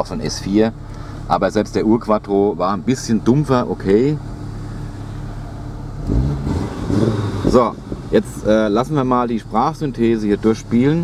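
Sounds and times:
car engine idling: 0:00.0 - 0:11.0.

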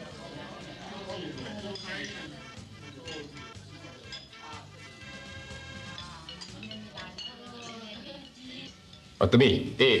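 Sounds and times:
soft background music: 0:00.0 - 0:10.0
plates and cutlery clinking: 0:00.2 - 0:09.2.

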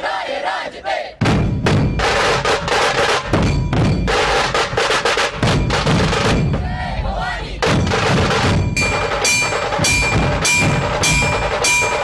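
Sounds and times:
massed drums beaten hard: 0:01.2 - 0:12.0.

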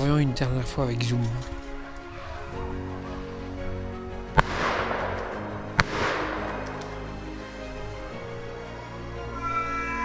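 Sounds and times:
background music: 0:00.0 - 0:10.0
rifle shots echoing: 0:04.4 - 0:07.1.

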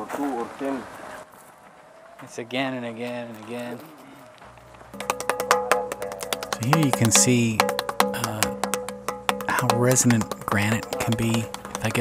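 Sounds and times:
hand knocking on stone block: 0:05.0 - 0:12.0
stone ringing: 0:05.0 - 0:12.0.

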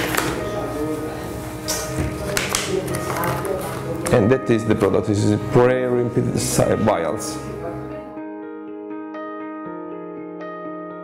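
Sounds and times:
background music with held notes: 0:00.0 - 0:11.0
packaging crinkling and tearing: 0:02.2 - 0:04.1.

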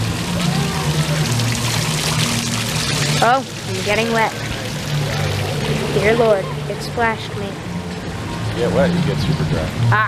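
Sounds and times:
fountain splashing: 0:00.0 - 0:10.0.

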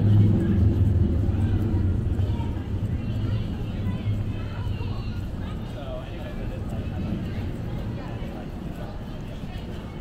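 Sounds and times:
faint voices of passers-by: 0:00.0 - 0:10.0
low mechanical hum: 0:00.0 - 0:10.0.

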